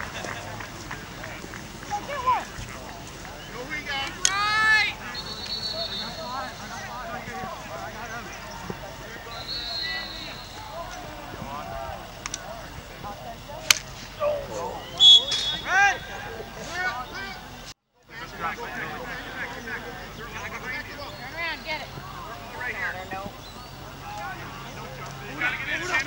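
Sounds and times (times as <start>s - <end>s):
faint shouting players: 0.0s - 26.0s
faint voices calling out: 0.0s - 26.0s
lacrosse stick clacks: 4.0s - 4.4s, 12.2s - 12.5s, 13.6s - 14.0s
faint clicks: 12.2s - 12.5s.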